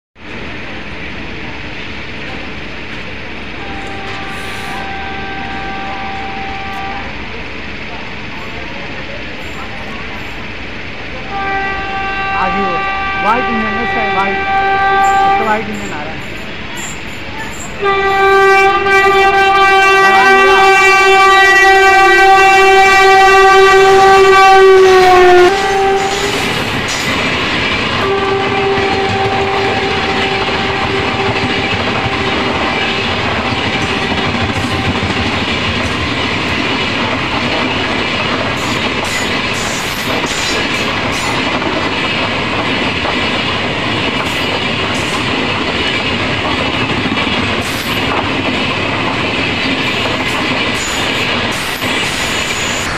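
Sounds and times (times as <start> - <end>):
train wheels rumbling: 0.2 - 52.9
train horn blast: 3.6 - 7.1, 11.2 - 16.2, 17.8 - 26.7, 28.0 - 35.4
clickety-clack over rail joints: 25.4 - 52.9.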